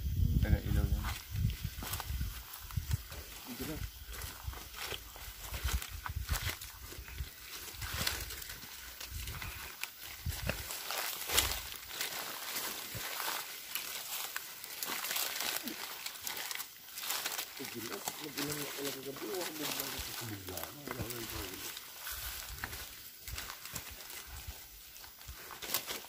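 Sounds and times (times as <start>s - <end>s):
footsteps through dry grass: 0.0s - 26.0s
crackling and rustling of stems: 0.5s - 26.0s.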